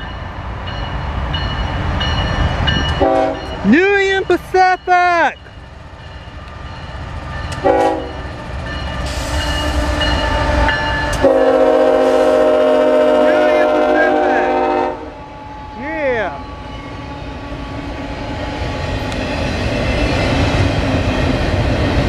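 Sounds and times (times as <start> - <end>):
freight train rumble: 0.0 - 22.0
locomotive horn blast: 3.0 - 3.6, 7.6 - 8.2, 9.1 - 15.3
train wheels hissing: 7.5 - 12.6.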